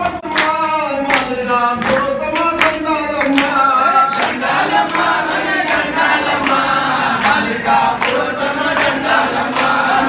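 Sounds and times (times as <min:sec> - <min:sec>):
hand clapping: 0:00.0 - 0:10.0
group singing devotional song: 0:01.2 - 0:10.0.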